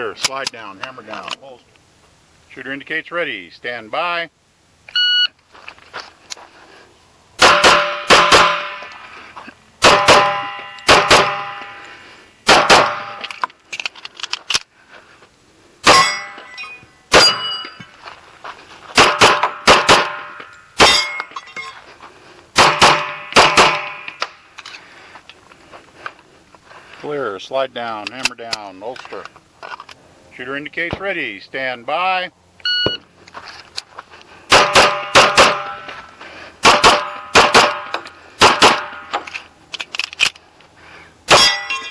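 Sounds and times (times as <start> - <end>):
pistol shots: 7.4 - 8.8, 9.8 - 11.7, 12.4 - 13.3, 19.0 - 21.1, 22.6 - 24.3, 34.5 - 35.8, 36.6 - 39.0
shot timer beep: 32.6 - 33.0.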